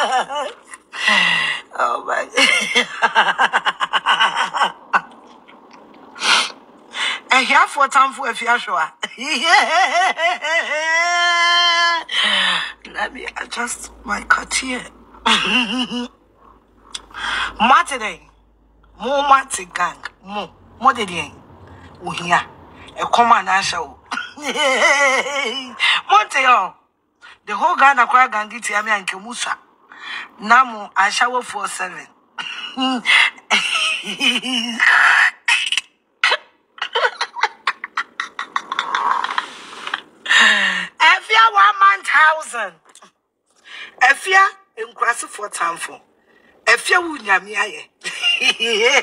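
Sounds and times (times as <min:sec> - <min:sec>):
woman laughing: 0:00.0 - 0:01.2, 0:02.3 - 0:05.2, 0:09.0 - 0:12.7, 0:15.2 - 0:16.1, 0:23.2 - 0:26.0, 0:32.4 - 0:35.1, 0:36.2 - 0:40.5, 0:48.0 - 0:49.0.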